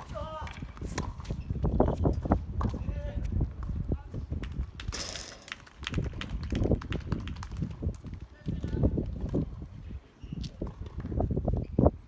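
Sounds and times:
tennis balls hitting rackets: 0.0s - 3.8s.

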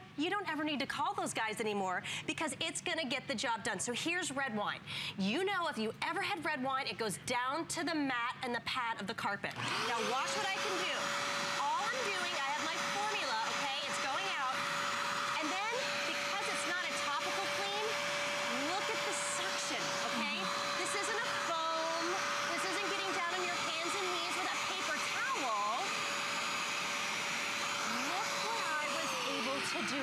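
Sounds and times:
carpet cleaner motor whine: 9.6s - 30.0s.

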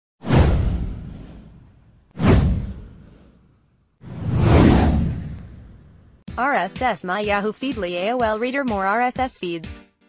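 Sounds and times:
downward whoosh with rumble: 4.0s - 6.2s.

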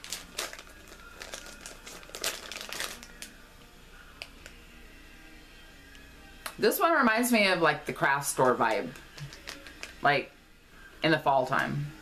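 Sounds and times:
cellophane bag crinkling: 0.0s - 3.3s, 9.0s - 10.0s.

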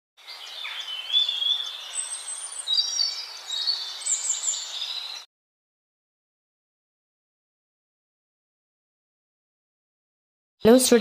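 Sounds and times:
small birds singing: 0.2s - 5.3s.

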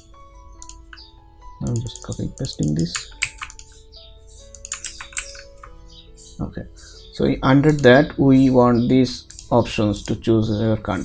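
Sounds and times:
quiet background music: 0.0s - 11.0s
computer keyboard typing: 1.7s - 3.8s, 4.5s - 5.8s.

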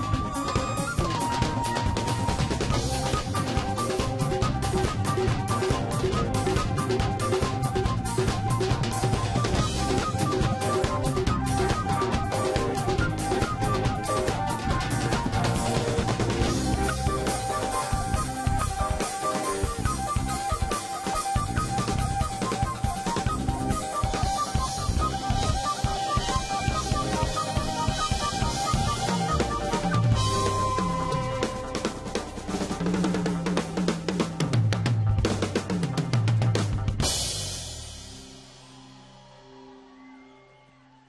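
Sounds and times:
dhol drums: 0.0s - 38.4s
drum kit played fast: 0.0s - 39.2s.

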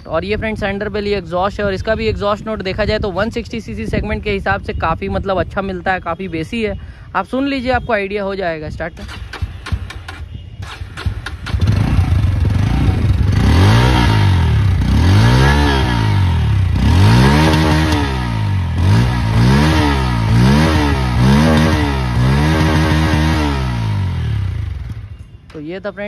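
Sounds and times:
motorcycle engine revving: 8.9s - 25.3s.

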